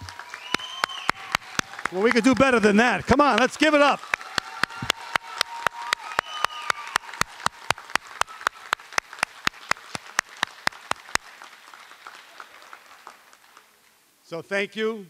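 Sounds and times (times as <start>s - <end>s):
man clapping near microphone: 0.0s - 13.2s
audience applause: 0.0s - 13.8s.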